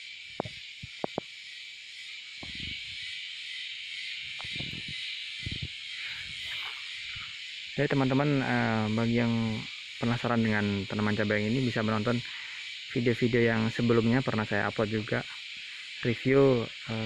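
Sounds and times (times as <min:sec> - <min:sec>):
high-pitched insect chorus: 0:00.0 - 0:17.0.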